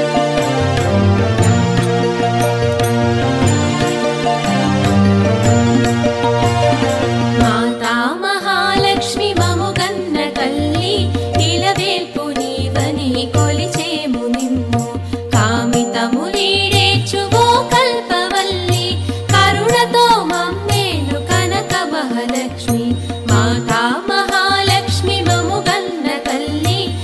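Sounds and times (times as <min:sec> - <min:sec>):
low percussion beat: 0:00.0 - 0:07.6
ornamented melody line: 0:00.0 - 0:14.3.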